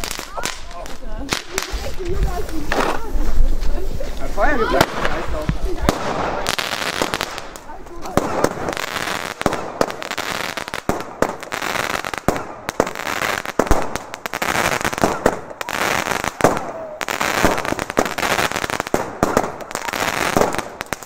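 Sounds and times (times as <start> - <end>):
fireworks bangs: 0.0 - 21.0
fireworks crackling: 0.0 - 21.0.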